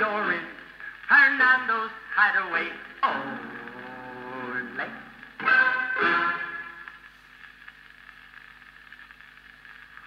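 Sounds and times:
record surface hiss and crackles: 0:00.0 - 0:10.0.

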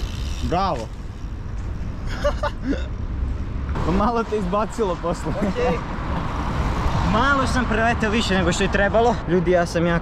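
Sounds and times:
street background rumble: 0:00.0 - 0:10.0.

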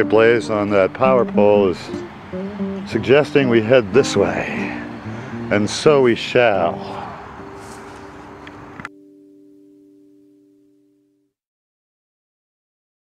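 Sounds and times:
road traffic noise: 0:00.0 - 0:08.9
held musical chord ringing: 0:00.0 - 0:11.3.

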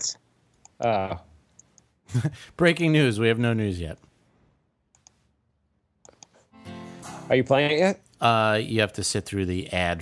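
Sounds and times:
computer mouse clicks: 0:01.6 - 0:01.9, 0:04.9 - 0:05.2, 0:06.0 - 0:06.5.

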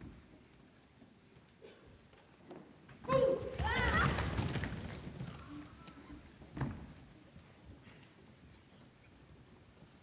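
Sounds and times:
performers dropping to wooden stage: 0:06.5 - 0:07.1.

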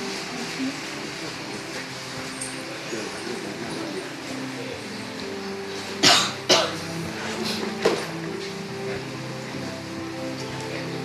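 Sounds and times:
low sustained tones: 0:00.0 - 0:11.0
person coughing: 0:06.0 - 0:06.8.

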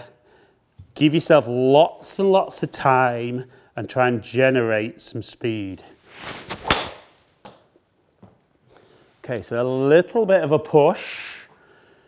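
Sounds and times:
golf club swoosh: 0:06.0 - 0:07.3
golf club striking ball: 0:06.5 - 0:07.2.

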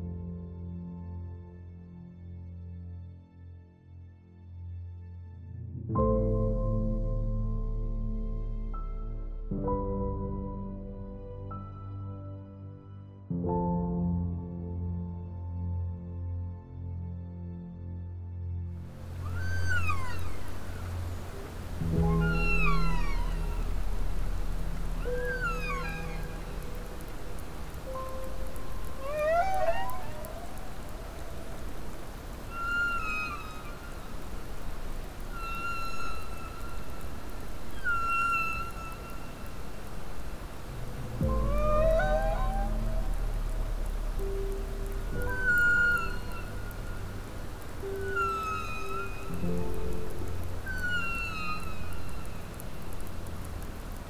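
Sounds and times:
ambient music drones: 0:00.0 - 0:54.0
whale song: 0:18.9 - 0:54.0.

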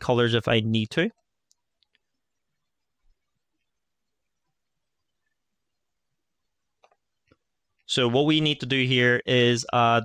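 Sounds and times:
faint computer mouse clicks: 0:01.2 - 0:02.2, 0:06.8 - 0:07.4.

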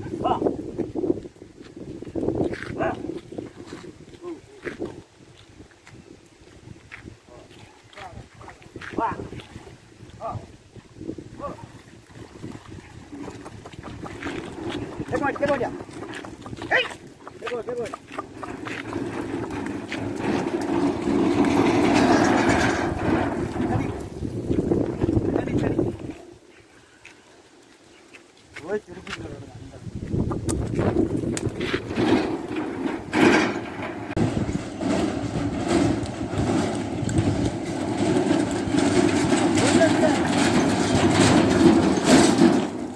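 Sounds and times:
hooves and wheels churning water: 0:00.0 - 0:33.2, 0:34.2 - 0:42.9
water splashing and sloshing: 0:08.3 - 0:26.2.

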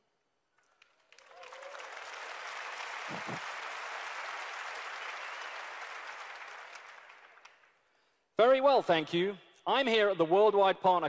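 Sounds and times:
large audience applauding: 0:00.6 - 0:07.9.

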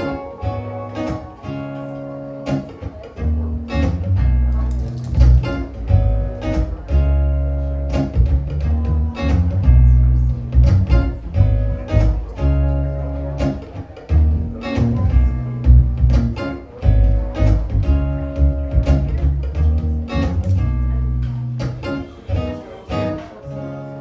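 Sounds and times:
acoustic guitar playing: 0:00.0 - 0:24.0.

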